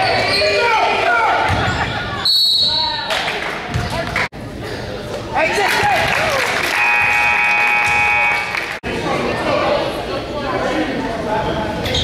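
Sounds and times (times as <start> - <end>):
scoreboard horn: 6.7 - 8.8.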